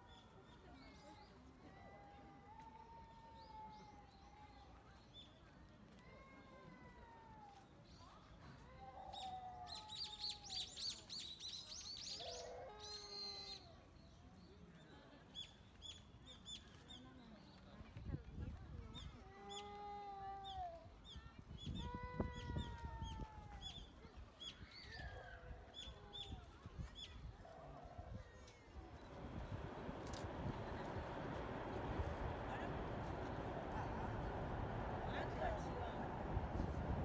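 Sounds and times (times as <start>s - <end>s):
low rumble: 28.9s - 37.0s.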